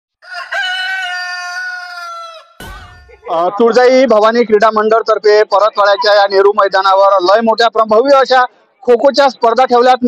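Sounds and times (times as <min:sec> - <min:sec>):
rooster crowing: 0:00.2 - 0:03.2.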